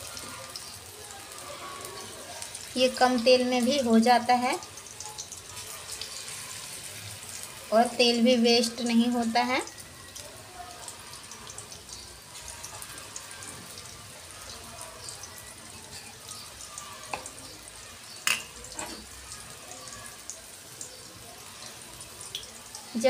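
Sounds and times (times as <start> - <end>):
fritters sizzling in oil: 0.0 - 23.0.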